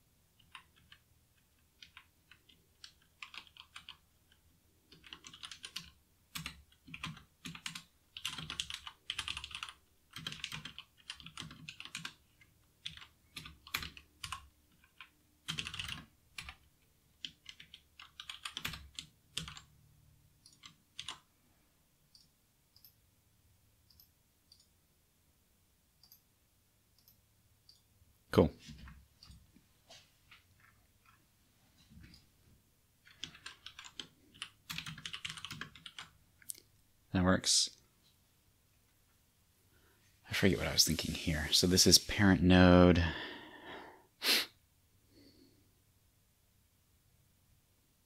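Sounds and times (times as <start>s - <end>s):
typing on a computer keyboard: 0.4s - 19.7s, 20.4s - 21.3s, 33.0s - 36.2s.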